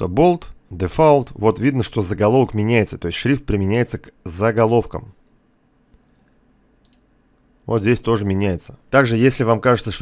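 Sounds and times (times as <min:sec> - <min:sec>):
faint mouse clicks: 0:05.2 - 0:07.5.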